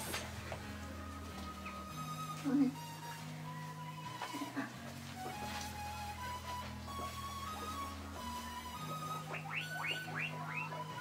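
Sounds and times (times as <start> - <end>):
background music: 0.0 - 11.0
guinea pig squeaking: 6.4 - 11.0.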